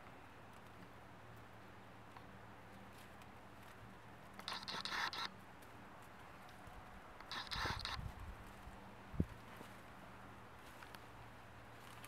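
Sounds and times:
kitten claws scratching basket: 4.4 - 5.3, 7.2 - 8.0.

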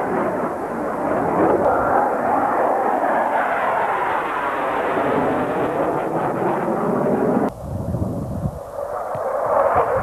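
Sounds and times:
jet fighter flying past: 0.0 - 7.5, 8.4 - 10.0.

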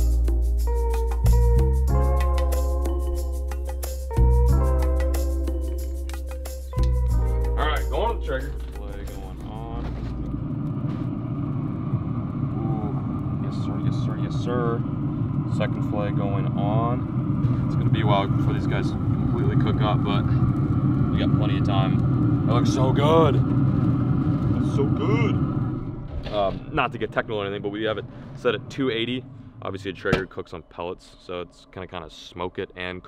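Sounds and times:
indistinct voices talking: 6.7 - 10.3, 12.5 - 23.6
low mechanical hum: 8.0 - 32.0.

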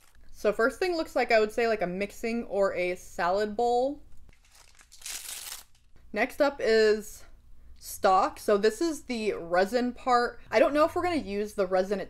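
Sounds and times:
plastic packaging crinkling: 4.3 - 5.9.

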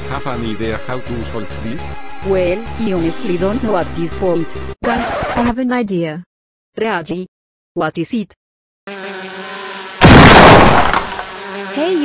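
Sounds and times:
cartoon bee swarm buzzing: 8.9 - 12.0
loud crash-like burst: 10.0 - 11.3.

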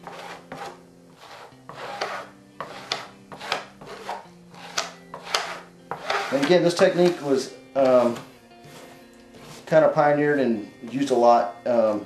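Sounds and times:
plastic spreader scraping fiberglass: 0.0 - 10.0.

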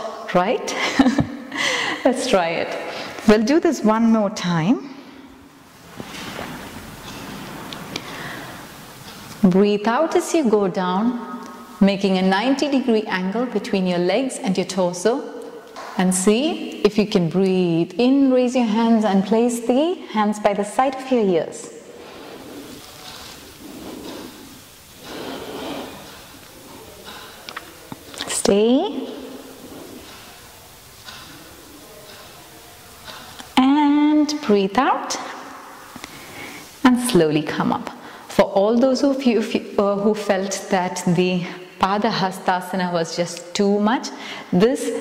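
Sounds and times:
person breathing in: 8.0 - 8.7, 22.0 - 26.1.

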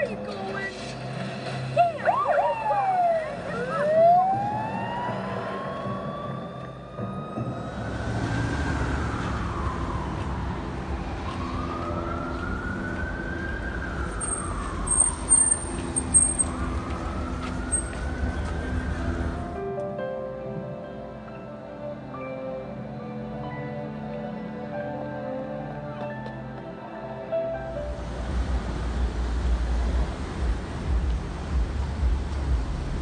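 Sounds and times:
film soundtrack with sliding tones: 0.0 - 9.2
street traffic noise: 0.0 - 33.0
emergency siren wailing: 1.8 - 19.6.

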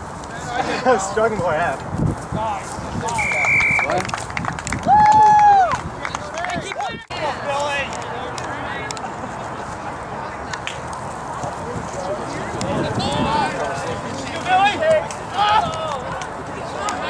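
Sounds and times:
referee's whistle blast: 3.2 - 4.0
long held shout: 4.9 - 5.8
players and spectators shouting: 12.7 - 17.0.

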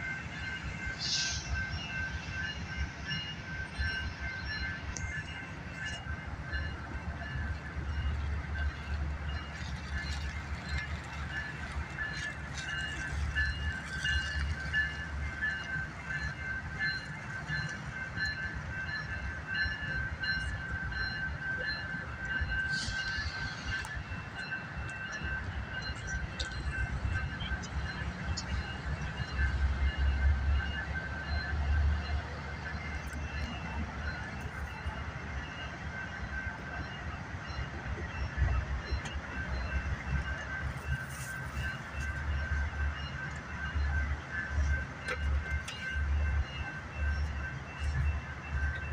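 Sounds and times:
crossing bell ringing: 0.0 - 48.9
diesel locomotive rumbling: 0.0 - 48.9.

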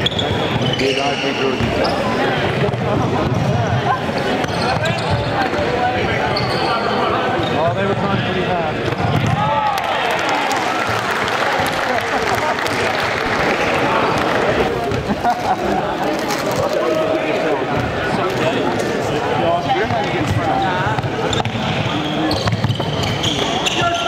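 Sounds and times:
spectators chattering: 0.0 - 24.0
shoes squeaking on wooden floor: 21.3 - 24.0.

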